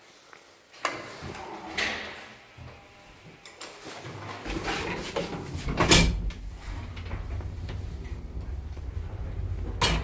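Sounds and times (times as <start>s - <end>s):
metal door swinging open: 5.7s - 7.6s
low rumble: 5.7s - 10.0s.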